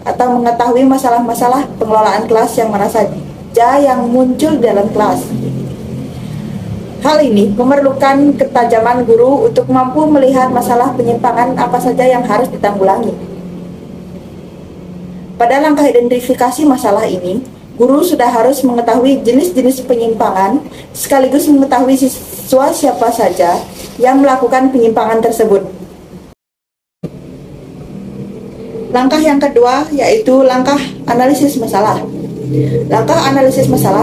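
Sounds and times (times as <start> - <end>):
woman's voice: 0.0 - 5.6, 7.0 - 13.3, 15.4 - 25.9, 28.8 - 34.0
low background hum: 0.0 - 26.4, 27.0 - 34.0.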